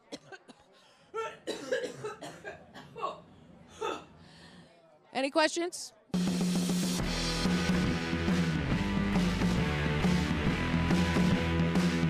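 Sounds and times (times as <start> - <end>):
woman coughing into a microphone: 0.0 - 4.2.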